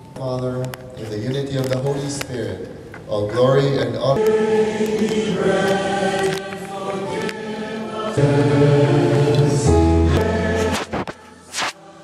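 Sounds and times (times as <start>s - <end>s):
congregation singing: 4.1s - 12.0s.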